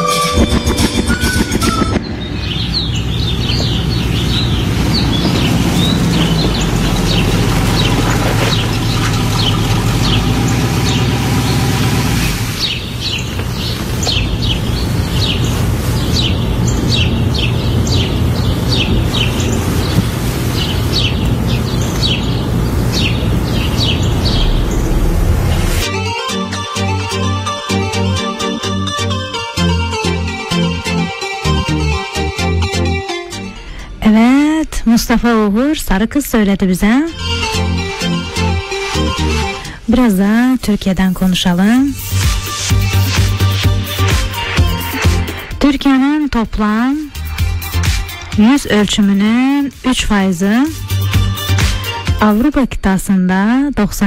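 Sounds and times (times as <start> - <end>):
folk tune with flute: 0.0 - 2.2
rapid bird chirps: 0.4 - 11.7, 12.6 - 25.1
low musical backing: 14.8 - 35.7, 36.6 - 39.7.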